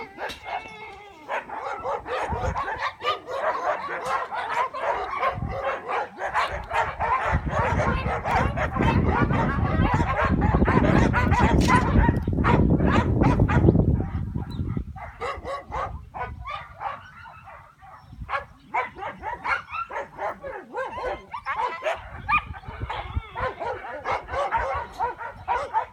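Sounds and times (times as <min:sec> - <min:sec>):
dogs yipping and whining: 0:00.0 - 0:25.9.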